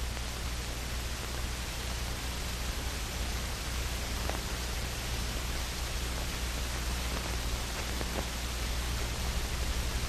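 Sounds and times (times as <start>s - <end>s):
film soundtrack hiss and hum: 0.0s - 10.0s.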